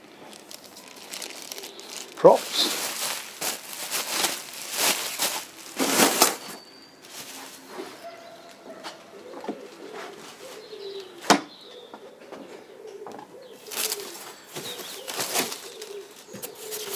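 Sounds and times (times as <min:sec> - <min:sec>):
bubble wrap crinkling: 0:00.0 - 0:08.6, 0:13.6 - 0:16.9.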